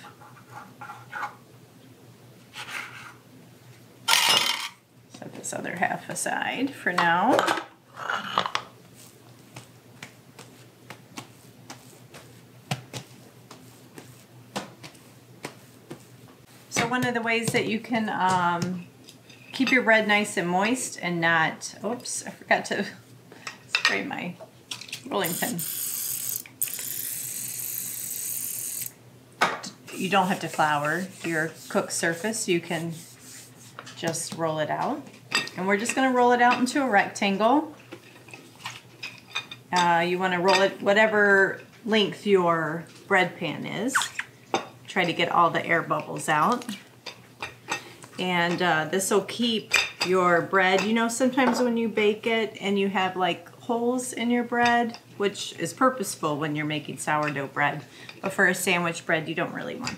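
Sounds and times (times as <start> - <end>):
dough handling: 8.9 - 18.8, 29.9 - 36.8.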